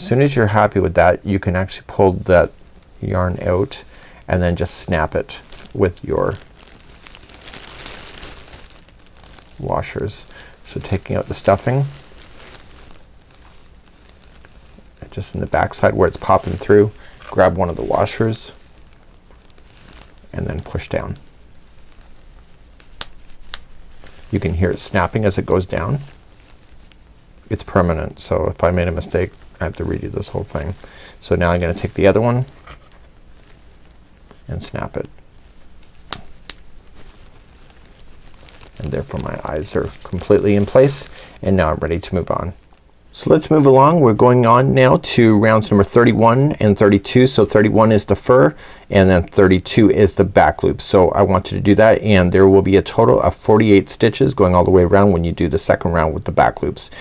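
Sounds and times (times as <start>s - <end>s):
hands rustling crocheted toy: 1.5s - 48.6s.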